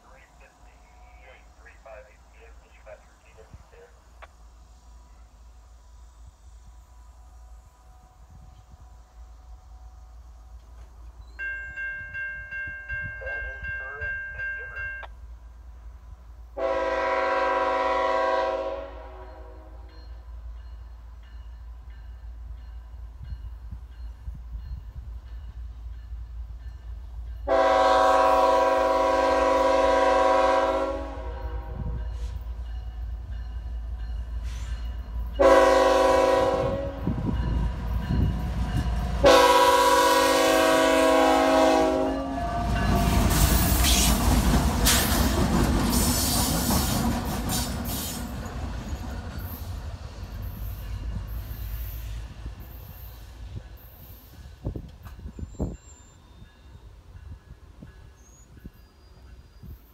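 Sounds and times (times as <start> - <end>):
locomotive engine rumble: 0.0 - 11.2
locomotive air horn blasts: 16.6 - 19.9, 27.4 - 32.4, 35.4 - 37.3, 39.2 - 44.0
train wheel noise: 19.1 - 59.9.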